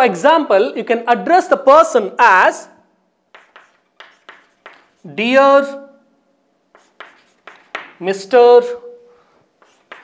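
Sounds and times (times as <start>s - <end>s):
chalk writing on chalkboard: 3.3s - 5.2s, 6.7s - 8.0s, 9.6s - 10.0s.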